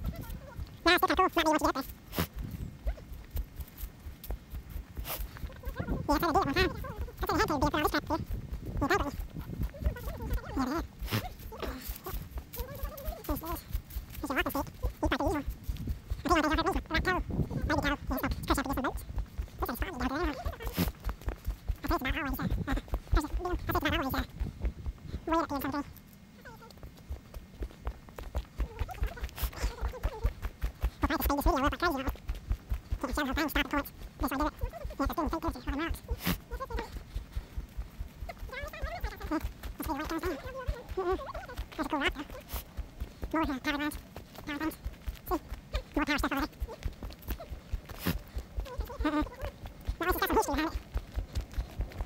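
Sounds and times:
footsteps on dry leaves: 1.4 - 25.1, 36.0 - 52.0
person making wavering vocal sounds: 5.4 - 15.6, 21.7 - 24.4, 32.9 - 42.6, 43.2 - 50.9
person making bleat-like sounds: 33.1 - 37.0.

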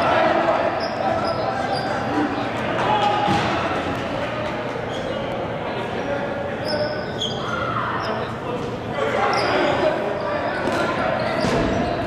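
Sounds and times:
sneaker squeaks: 0.6 - 3.4, 4.4 - 5.4, 6.0 - 12.0.

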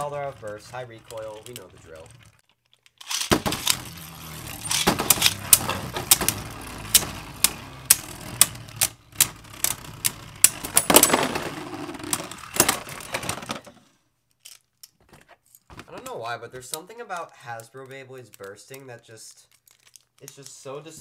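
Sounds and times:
spinning tops whirring: 0.0 - 2.4, 3.0 - 13.7
spinning tops clacking: 3.0 - 13.3
top bursting apart: 3.1 - 4.0, 4.6 - 8.7.

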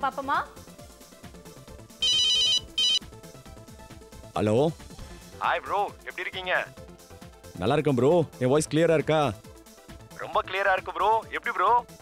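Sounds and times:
high beeping ringtone: 2.0 - 3.0.

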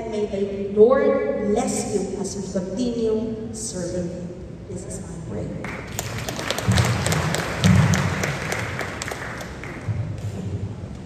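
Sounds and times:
audience applauding: 5.6 - 10.4.

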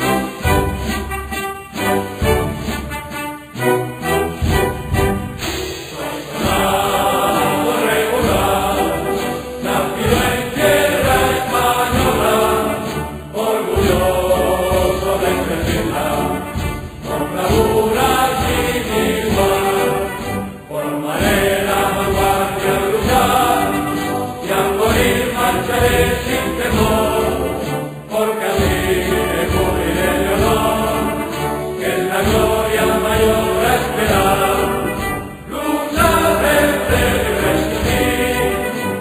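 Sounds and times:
choir singing chant-like phrases: 3.6 - 39.0.

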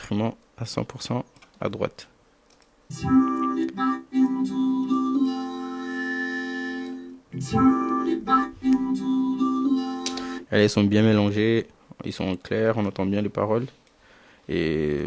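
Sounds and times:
vocoded voice on held chords: 2.9 - 10.5.

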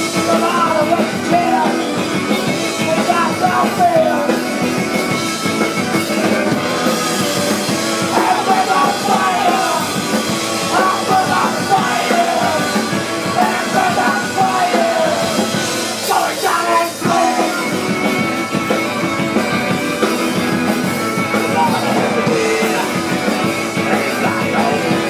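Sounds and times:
lead singer's voice: 0.0 - 4.8, 7.8 - 18.1, 21.4 - 25.0
drum kit: 0.0 - 25.0
electric guitars: 0.0 - 25.0.

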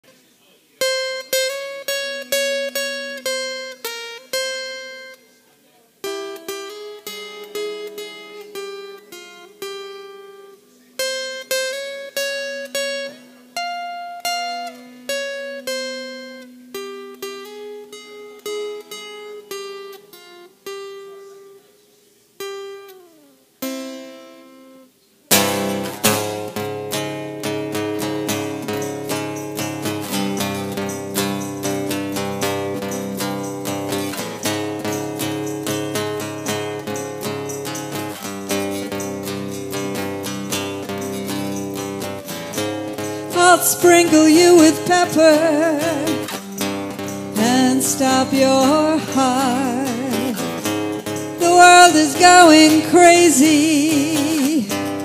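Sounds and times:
plucked guitar melody: 0.8 - 55.0.

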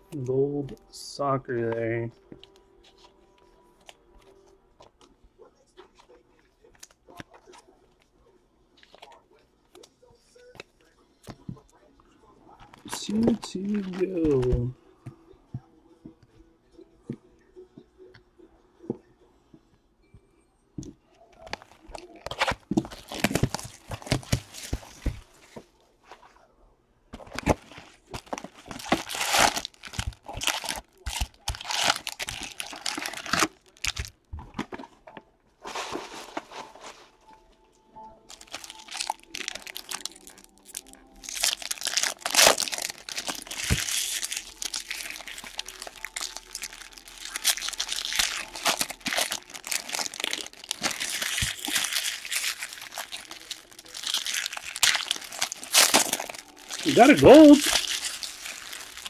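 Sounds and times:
card pack wrappers crinkling: 12.7 - 14.8, 21.4 - 25.4, 27.2 - 34.8, 38.3 - 59.0.

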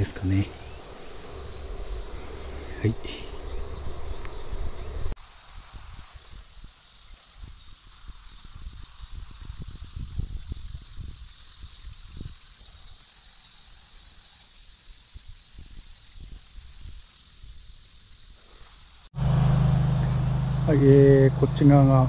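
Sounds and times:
wind rumbling on microphone: 0.0 - 13.0, 15.0 - 17.8
steady high-pitched hiss: 0.0 - 22.0.

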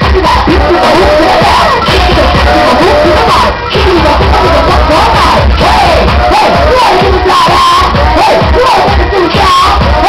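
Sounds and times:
crowd shouting and cheering: 0.0 - 10.0
loud dance music: 0.0 - 10.0.

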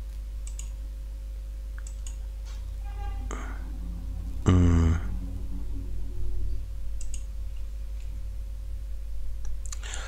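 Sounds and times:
low hum and hiss: 0.0 - 10.0
computer mouse clicks: 0.4 - 0.8, 1.7 - 2.2, 7.0 - 7.3.

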